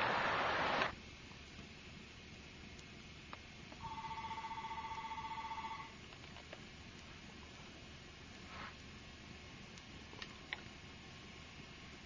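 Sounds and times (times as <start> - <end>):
electronic telephone ring: 3.8 - 5.9.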